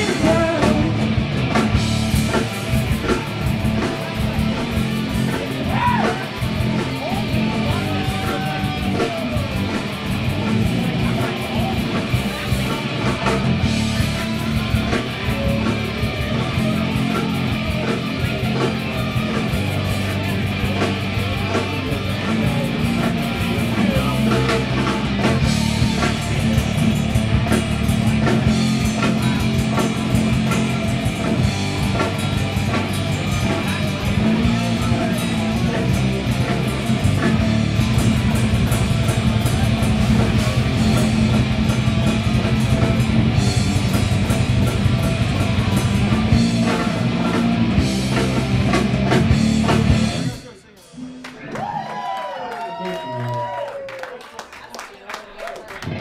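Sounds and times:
drum kit with cymbals: 0:00.0 - 0:51.2
distorted electric guitars: 0:00.0 - 0:51.4, 0:55.8 - 0:56.0
bass guitar: 0:00.0 - 0:51.9, 0:55.8 - 0:56.0.

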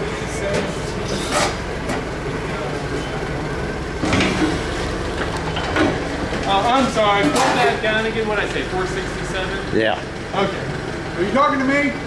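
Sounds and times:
forklift engine idling: 0:00.0 - 0:12.0
metal knocks and clanks: 0:04.0 - 0:07.8.

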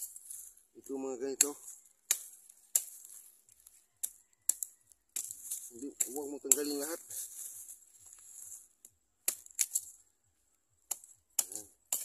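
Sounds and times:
blade striking dry soil: 0:00.0 - 0:10.1, 0:10.8 - 0:12.0.

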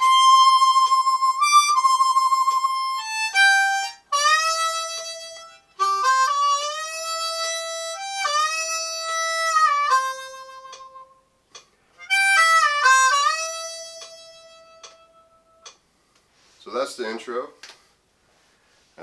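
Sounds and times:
harmonica country melody: 0:00.0 - 0:11.3, 0:11.9 - 0:15.8.

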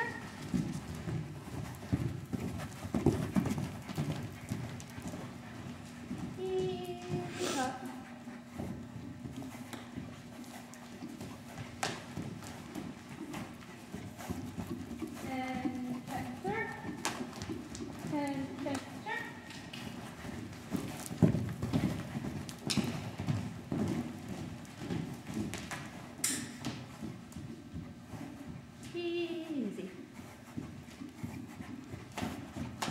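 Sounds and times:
hoofbeats trotting on sand: 0:00.0 - 0:32.9.

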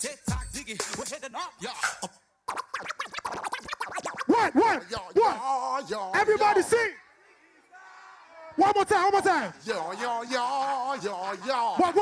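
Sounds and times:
dj scratching: 0:00.0 - 0:05.2
hip-hop beat: 0:00.0 - 0:05.4.

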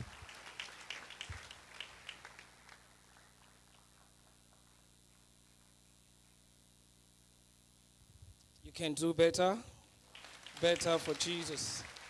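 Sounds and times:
scattered hand claps: 0:00.0 - 0:05.7, 0:10.1 - 0:12.0.

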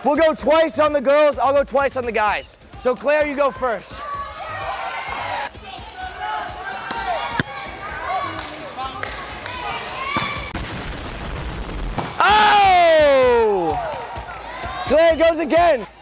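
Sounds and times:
gym chatter: 0:00.0 - 0:10.6, 0:13.1 - 0:16.0
volleyball spike smack: 0:06.9 - 0:07.6
loud shout: 0:12.2 - 0:16.0.

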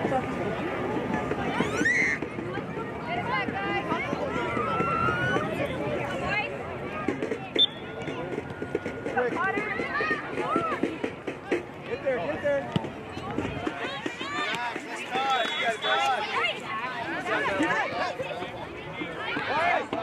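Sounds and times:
people shouting and calling: 0:01.2 - 0:06.5, 0:13.3 - 0:20.0.

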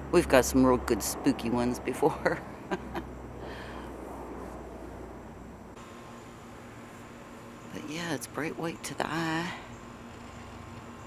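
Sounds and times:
low hum: 0:00.0 - 0:11.0.

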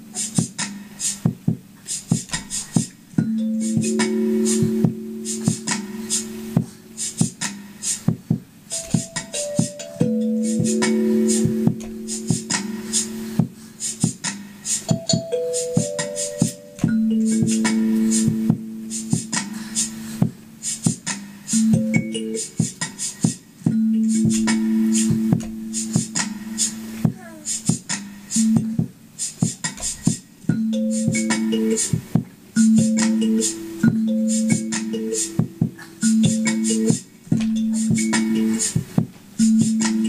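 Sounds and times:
kalimba plucked with echo: 0:03.2 - 0:07.5, 0:08.7 - 0:14.0, 0:14.9 - 0:20.7, 0:21.6 - 0:22.6, 0:23.7 - 0:27.1, 0:30.5 - 0:40.0.

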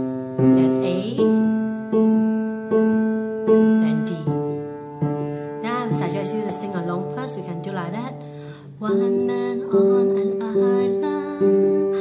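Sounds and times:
piano note ringing: 0:00.0 - 0:08.4.

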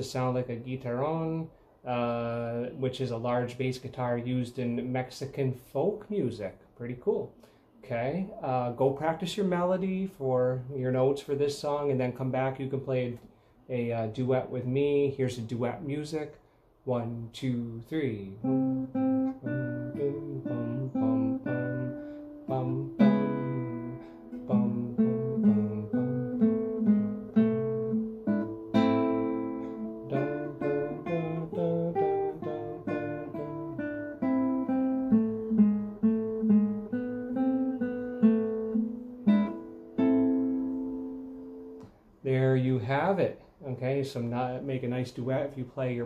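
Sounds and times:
classical guitar playing: 0:18.3 - 0:41.8.

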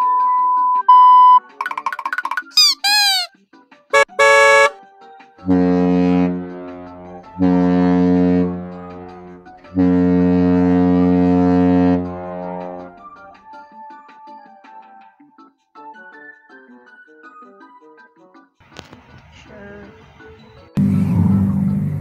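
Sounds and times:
deep horn blasts: 0:04.0 - 0:04.7, 0:05.5 - 0:13.0, 0:20.8 - 0:22.0
short buzz: 0:04.0 - 0:04.7.

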